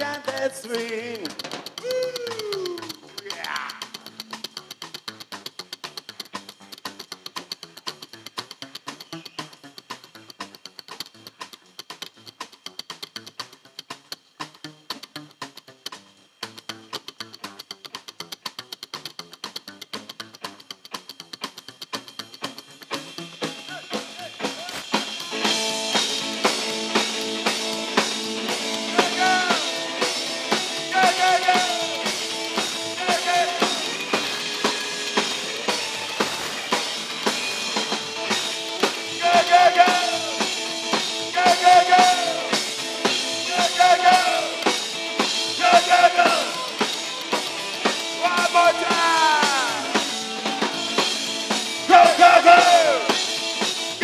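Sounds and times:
fast clicking beat: 0:00.0 - 0:54.0
rockabilly band playing: 0:00.0 - 0:54.0.

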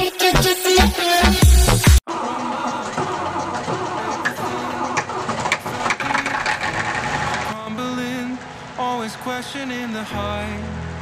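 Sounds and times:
background music: 0:00.0 - 0:11.0
combine harvester engine running: 0:02.2 - 0:10.2.

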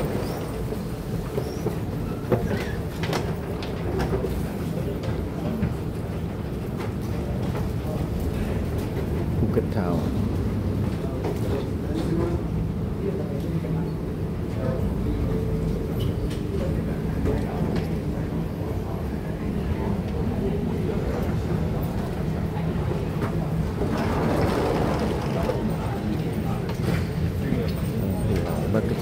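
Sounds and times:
passengers chattering: 0:00.0 - 0:29.0.

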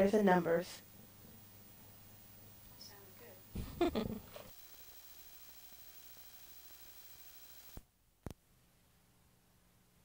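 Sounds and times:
videotape hiss: 0:00.0 - 0:08.4.

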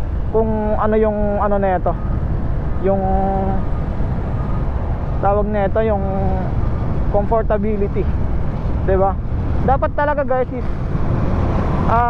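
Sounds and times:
wind and road noise rumble: 0:00.0 - 0:12.0.

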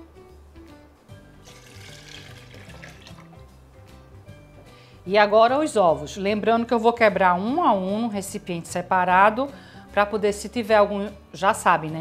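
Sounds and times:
quiet background music: 0:00.0 - 0:12.0
milk pouring into blender jar: 0:01.4 - 0:03.4.

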